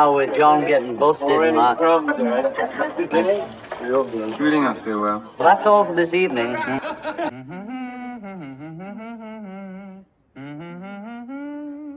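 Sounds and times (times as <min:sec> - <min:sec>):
person humming: 0:07.2 - 0:11.9.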